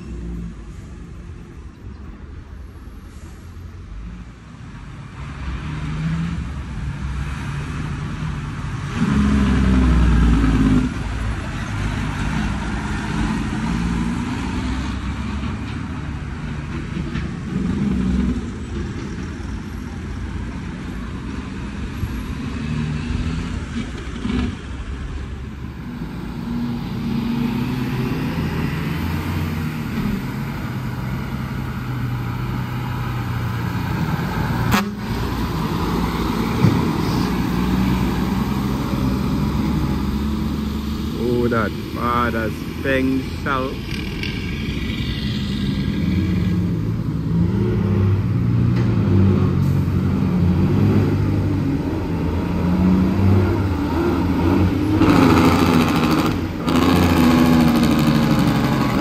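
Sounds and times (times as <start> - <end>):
cars and trucks driving past: 0.0 - 59.0.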